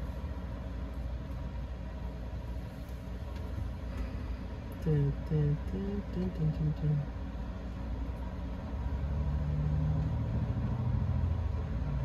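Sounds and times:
low engine-like rumble: 0.0 - 12.0.

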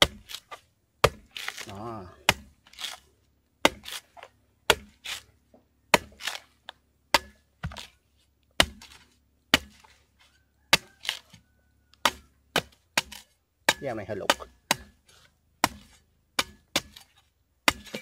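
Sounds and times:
machete chopping coconut husk: 0.0 - 8.0, 8.6 - 10.0, 10.6 - 18.0.

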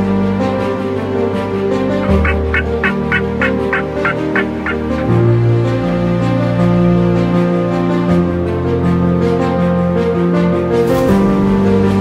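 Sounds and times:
background music: 0.0 - 12.0
wild turkey calling: 2.0 - 4.8.

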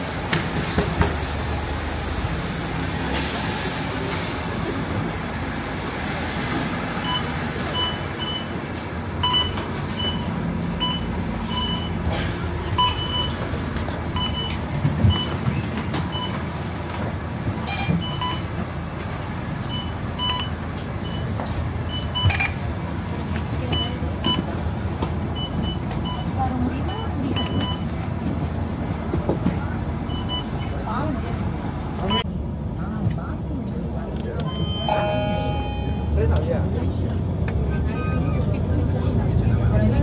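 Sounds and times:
bus engine running: 0.0 - 40.0
crowd chatter: 2.6 - 20.2, 20.8 - 40.0.

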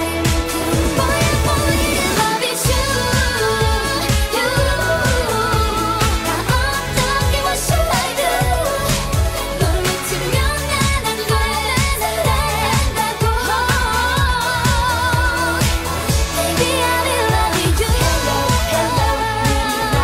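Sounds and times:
female vocals singing: 0.0 - 20.0
steady drum beat: 0.0 - 20.0.

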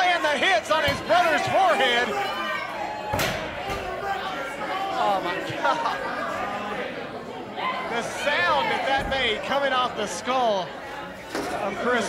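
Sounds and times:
faint crowd murmur: 0.0 - 12.0.

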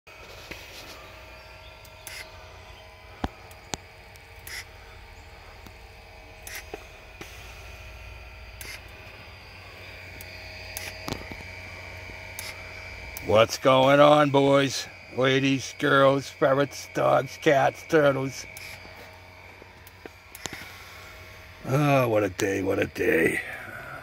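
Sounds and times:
faint steady tones: 0.1 - 24.0
low steady rumble: 0.2 - 21.8
sharp clicks: 1.8 - 2.3, 3.2 - 4.7, 5.6 - 7.4, 8.5 - 9.2, 10.2 - 11.5, 18.3 - 20.8.

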